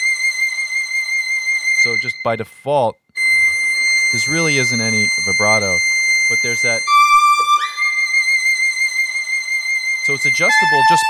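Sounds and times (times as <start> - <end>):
solo violin legato note: 3.2 - 8.5, 10.1 - 11.0.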